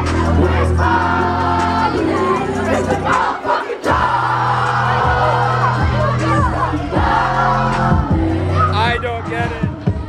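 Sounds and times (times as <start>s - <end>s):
kids singing and shouting: 0.0s - 10.0s
loud dance music: 0.0s - 10.0s.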